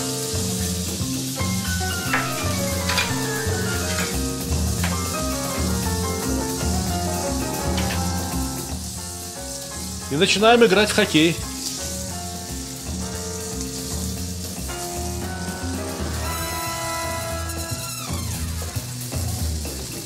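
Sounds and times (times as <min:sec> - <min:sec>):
beef sizzling on a griddle: 0:00.0 - 0:20.0
slow background music: 0:01.5 - 0:18.6.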